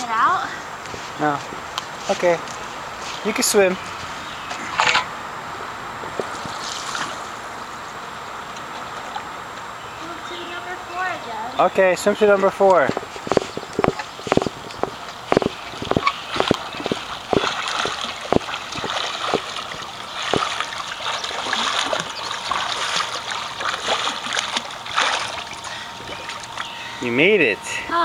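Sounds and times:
swimmer splashing in pool: 0:13.0 - 0:26.8.

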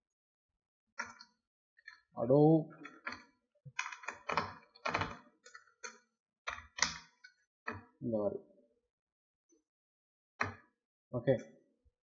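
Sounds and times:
typing on computer keyboard: 0:03.8 - 0:05.2.

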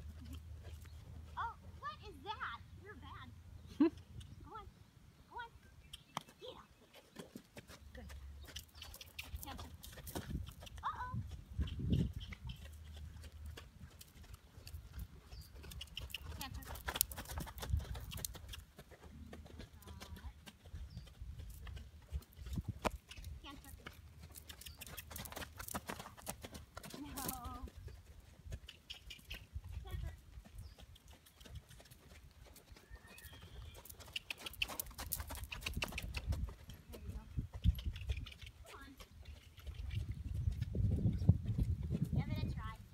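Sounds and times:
hooves thudding on sand: 0:06.0 - 0:42.9.

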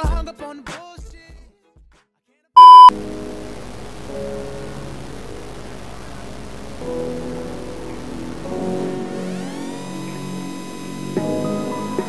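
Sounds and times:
loud electronic beep: 0:02.6 - 0:02.9
intro music: 0:02.6 - 0:12.0
background music: 0:03.0 - 0:12.0.

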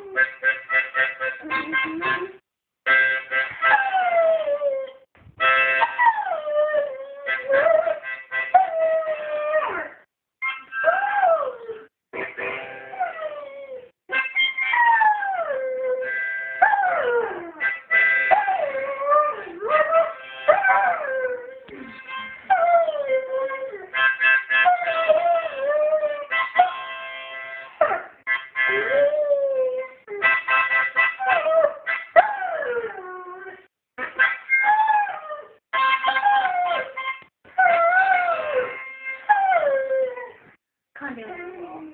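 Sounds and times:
harmonica chords: 0:00.0 - 0:03.8, 0:05.4 - 0:06.0, 0:07.2 - 0:08.9, 0:10.4 - 0:10.8, 0:12.2 - 0:13.0, 0:14.1 - 0:14.7, 0:17.6 - 0:18.4, 0:21.7 - 0:22.5, 0:23.9 - 0:29.2, 0:30.2 - 0:32.2, 0:35.7 - 0:37.3.

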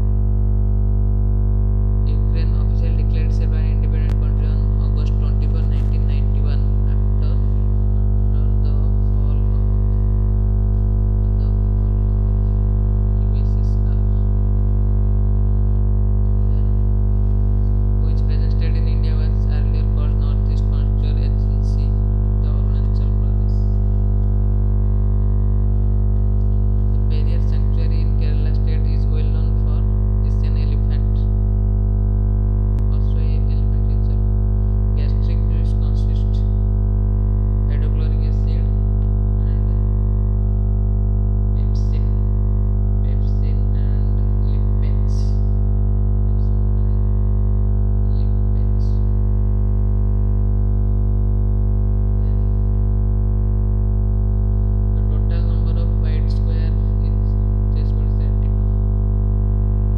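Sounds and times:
loud electrical hum: 0:00.0 - 0:59.9.

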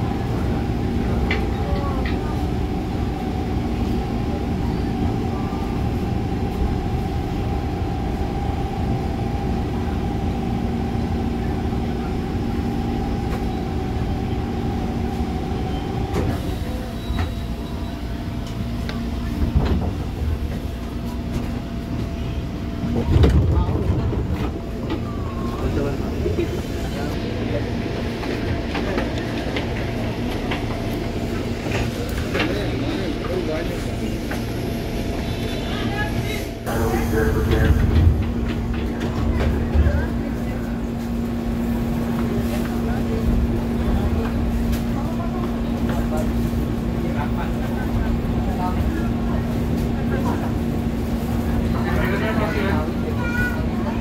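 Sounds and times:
electric train drive hum: 0:00.0 - 0:54.0
murmur of passengers: 0:00.0 - 0:54.0.

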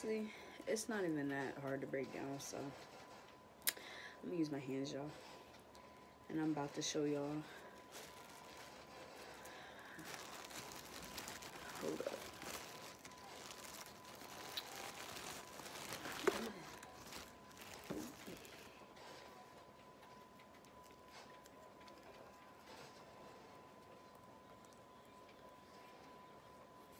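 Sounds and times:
plastic bag crinkling: 0:06.4 - 0:19.4
buds crumbled by hand: 0:07.2 - 0:19.4.

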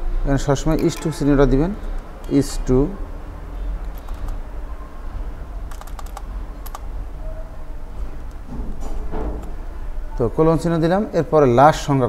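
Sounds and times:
computer keyboard keystrokes: 0:03.9 - 0:04.4, 0:05.7 - 0:06.8.

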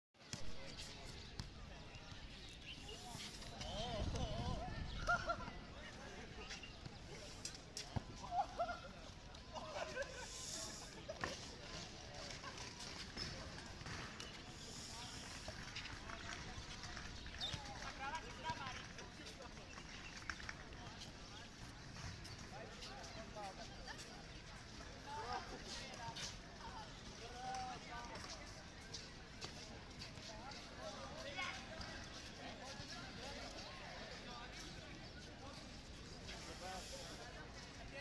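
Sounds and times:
distant people talking and calling: 0:00.2 - 0:38.0
faint voices: 0:00.2 - 0:38.0.

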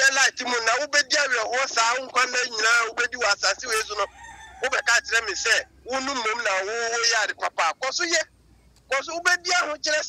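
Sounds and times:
man talking: 0:00.0 - 0:08.3, 0:08.9 - 0:10.0
rooster crowing: 0:03.7 - 0:05.9.

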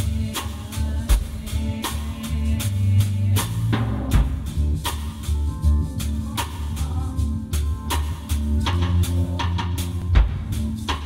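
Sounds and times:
drum kit steady beat: 0:00.0 - 0:11.0
sustained bass notes: 0:00.0 - 0:11.0.

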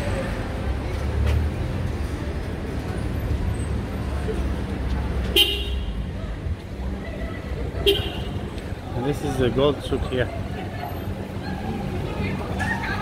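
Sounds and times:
low street rumble: 0:00.0 - 0:13.0.

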